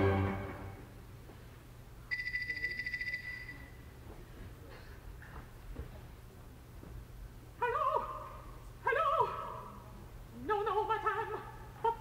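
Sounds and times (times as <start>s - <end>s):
telephone ringing: 2.1s - 3.7s.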